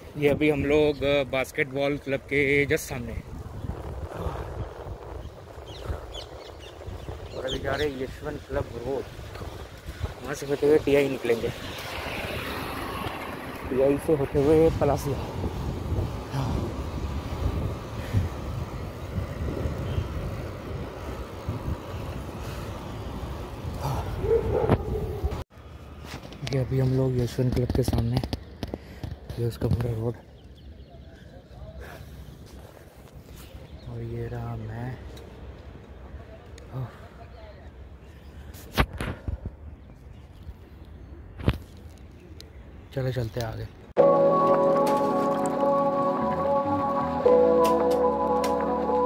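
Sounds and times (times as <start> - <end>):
tyre and road noise: 0.0 - 49.0
wind buffeting microphone: 2.1 - 25.4.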